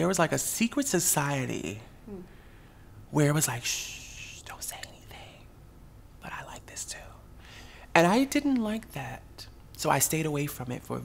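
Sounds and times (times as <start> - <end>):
person whispering: 3.5 - 5.5, 6.2 - 7.3.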